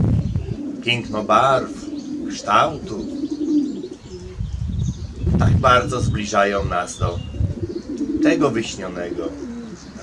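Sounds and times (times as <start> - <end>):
pigeon cooing: 0.2 - 10.0.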